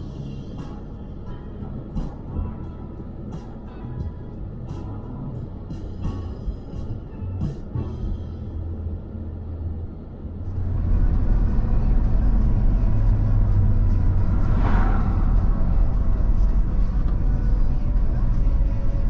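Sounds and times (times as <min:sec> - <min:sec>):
vehicle road and engine rumble: 0:00.0 - 0:19.0
vehicle swishing past: 0:10.5 - 0:17.8.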